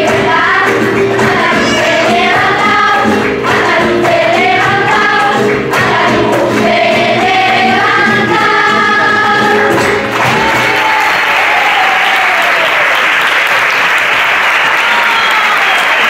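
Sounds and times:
children's choir singing: 0.0 - 10.9
flamenco guitar: 0.0 - 11.0.

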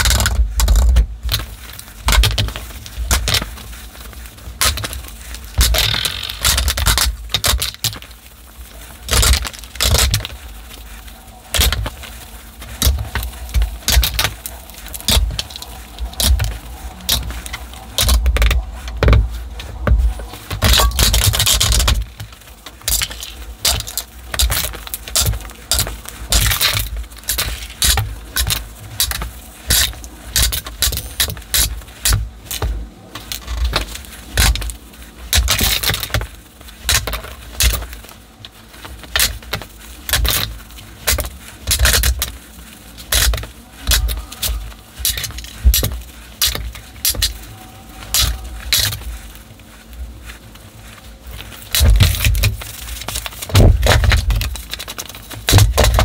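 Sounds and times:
cloth rubbing: 0.0 - 56.0.

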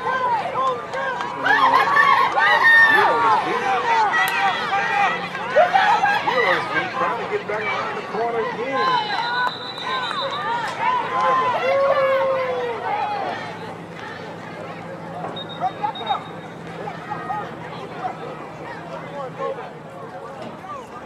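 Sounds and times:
spectators shouting and calling out: 0.0 - 21.0.

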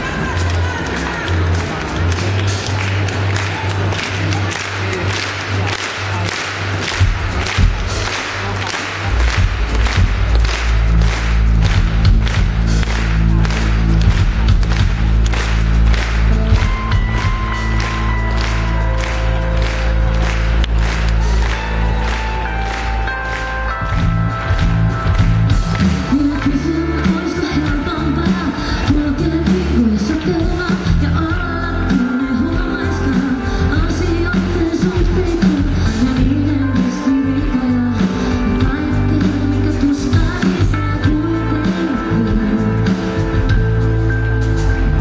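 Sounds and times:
heavy bass notes: 0.0 - 45.0
drum beat: 4.9 - 29.6.

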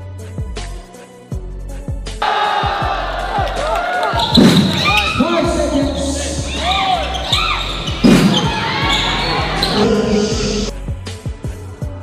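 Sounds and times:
background music with beat: 0.0 - 12.0
sneakers squeaking: 4.0 - 10.7
basketball bouncing on court: 4.2 - 5.2, 6.3 - 9.8.

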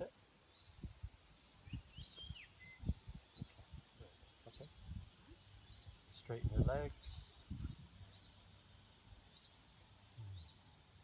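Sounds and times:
faint birdsong: 0.0 - 11.0.

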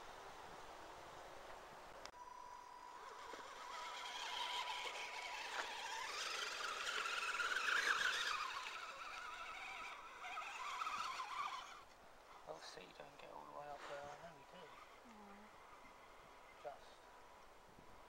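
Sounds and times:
thin steady high tone: 2.1 - 11.8
electric motor and gearing whining: 2.1 - 17.0.

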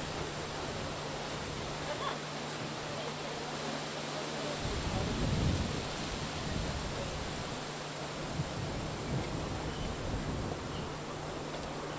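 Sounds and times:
microphone hiss: 0.0 - 11.9
low wind rumble on microphone: 4.6 - 11.9.

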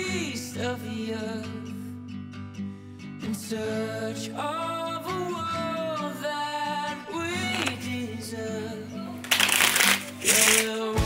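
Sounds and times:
background music: 3.5 - 11.0
playing cards shuffling: 7.5 - 7.8, 9.2 - 10.8.

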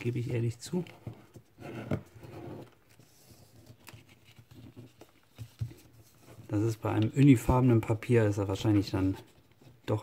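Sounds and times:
paper rustling and crinkling: 0.0 - 10.0.

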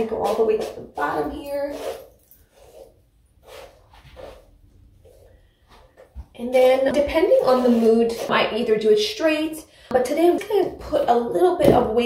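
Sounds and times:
hairbrush swishing through hair: 0.0 - 4.5, 7.1 - 8.7.

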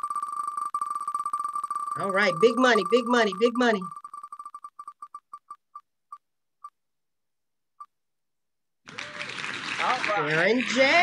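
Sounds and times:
spinning wheel electronic ticks: 0.0 - 5.6
recorded applause: 8.8 - 11.0.

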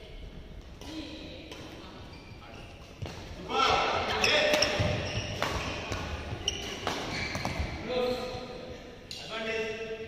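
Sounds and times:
racket hitting shuttlecock: 4.4 - 7.8.

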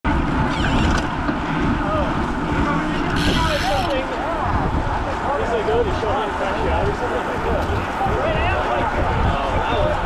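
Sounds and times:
faint voices: 0.1 - 10.0
wind rumbling on microphone: 0.1 - 10.0.

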